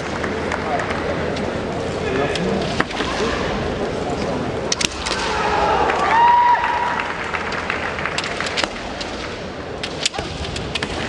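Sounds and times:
bamboo swords clacking: 4.7 - 5.4, 8.1 - 11.0
high drawn-out shout: 5.2 - 7.1.

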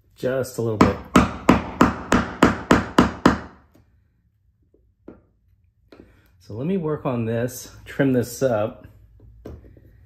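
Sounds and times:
hammer striking a chisel: 0.8 - 3.6.

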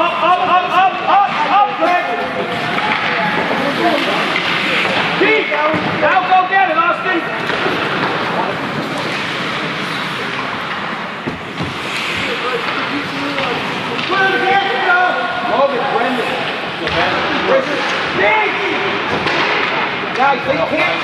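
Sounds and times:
ice hockey game noise: 0.0 - 21.0
hockey sticks and puck knocks: 1.2 - 6.2, 7.3 - 14.8, 16.4 - 21.0.

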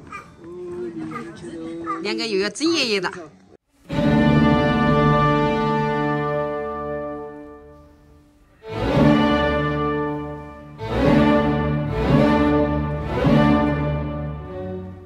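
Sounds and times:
orchestral music with strings: 3.8 - 15.0.

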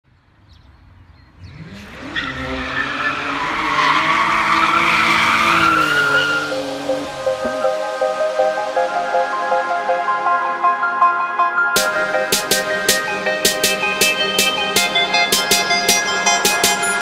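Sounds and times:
car engine revving: 1.3 - 8.6
tyres squealing: 2.2 - 7.0
electronic music: 4.9 - 17.0.

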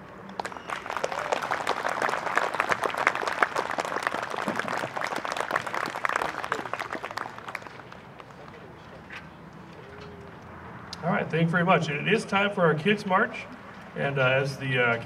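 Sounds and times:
audience applauding: 0.4 - 8.6.

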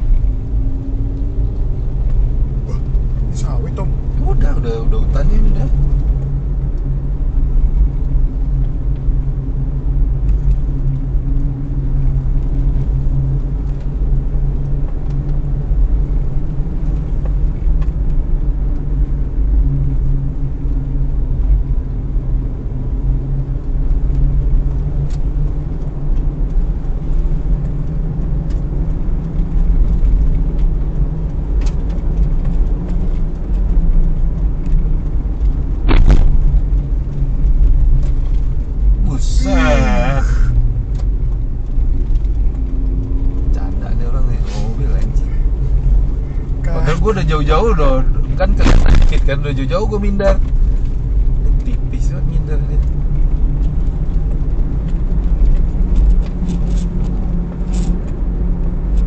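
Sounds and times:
car engine and road rumble: 0.0 - 59.0.

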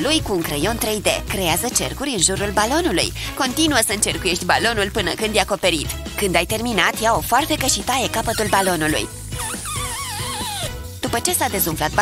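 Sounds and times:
balloon air hissing: 8.2 - 10.8
balloon squeal falling in pitch: 8.2 - 10.8.

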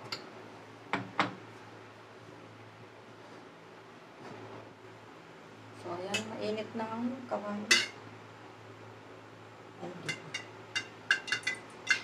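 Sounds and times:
metal spatula clinking on wok: 10.1 - 12.0.

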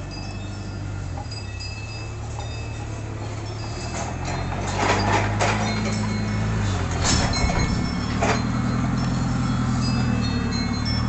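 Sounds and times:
faint high ringing tones: 0.0 - 11.0.

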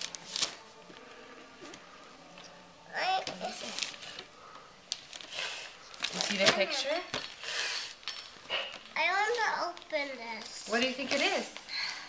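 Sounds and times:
wrapping paper rustling: 0.0 - 11.7.

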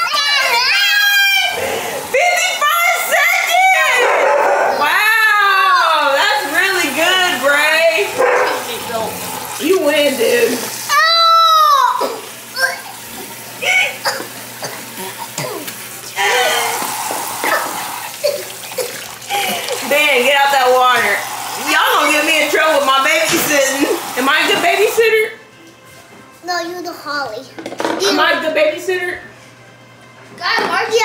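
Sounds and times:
children babbling and squealing: 0.0 - 1.9
child crying: 0.0 - 3.4, 10.9 - 13.0, 16.2 - 19.8
tap running into a sink: 16.7 - 19.8, 21.2 - 24.9.

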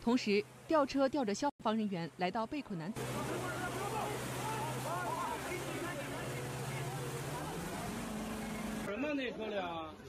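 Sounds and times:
low machine hum: 2.9 - 8.9
rushing floodwater: 3.0 - 8.9
faint shouting voices: 3.1 - 8.0.

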